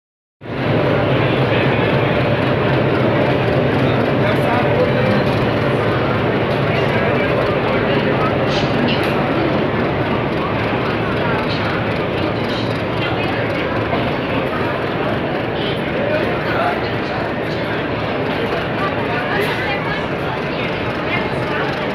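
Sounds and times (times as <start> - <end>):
diesel locomotive engine droning: 0.4 - 21.9
train rumbling on rails: 0.4 - 21.9.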